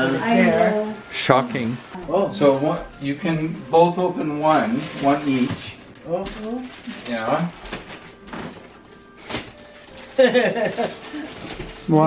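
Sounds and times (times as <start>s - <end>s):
faint background music: 0.0s - 12.0s
wrapping paper rustling: 4.2s - 12.0s.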